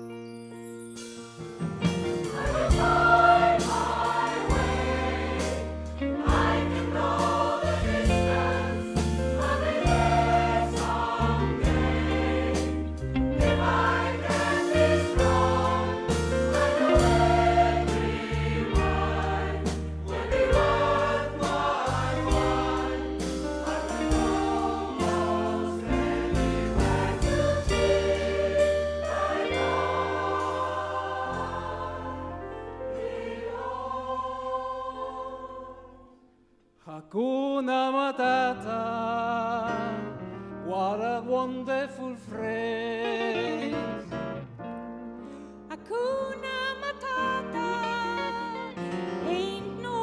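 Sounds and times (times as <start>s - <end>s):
instrumental accompaniment with beat: 0.8s - 32.0s
choir singing in harmony: 1.6s - 36.3s.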